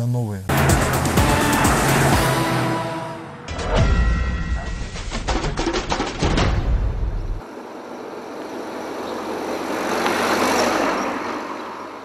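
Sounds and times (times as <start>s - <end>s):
vehicle driving past: 7.4s - 12.0s.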